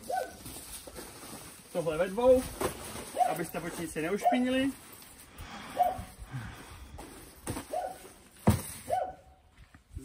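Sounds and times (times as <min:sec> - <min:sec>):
tent fabric rustling: 0:00.0 - 0:05.3.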